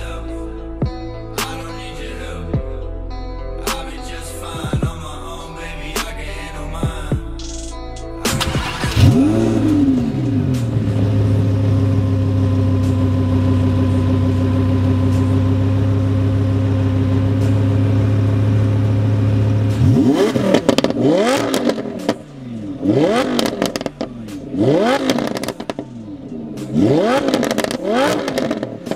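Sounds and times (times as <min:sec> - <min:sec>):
sports car engine idling: 0:00.0 - 0:28.9
sports car engine revving: 0:08.2 - 0:28.9.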